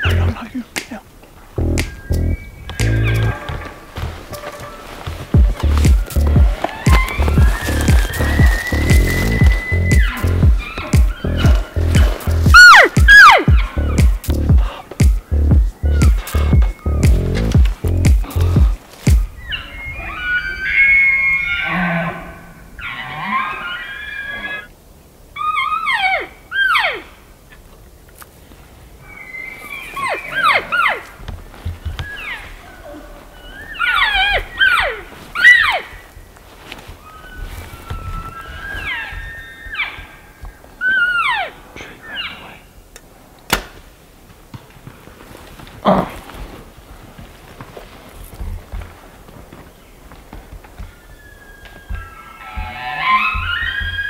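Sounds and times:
elk bugling: 1.5 - 24.7, 50.8 - 54.0.

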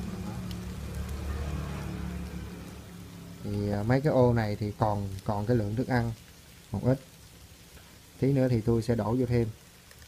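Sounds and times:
crickets crawling on dry leaves: 0.0 - 10.0.

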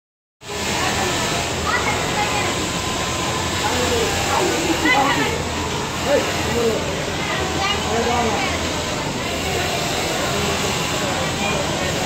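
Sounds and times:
machinery hum and hiss: 0.4 - 12.0
people talking indistinctly: 0.5 - 12.0.

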